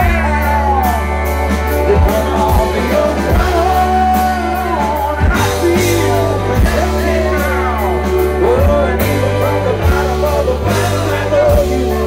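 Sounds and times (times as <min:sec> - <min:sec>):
lead guitar melody bending: 0:00.0 - 0:12.0
live rock band playing: 0:00.0 - 0:12.0.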